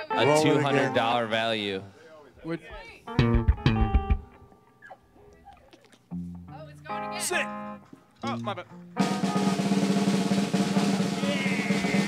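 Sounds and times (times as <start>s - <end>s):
fast snare drum roll: 9.0s - 12.0s.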